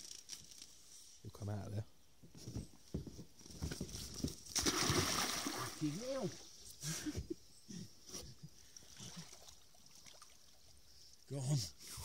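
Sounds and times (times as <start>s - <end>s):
water splashes and trickles: 4.5s - 6.6s, 8.6s - 12.0s.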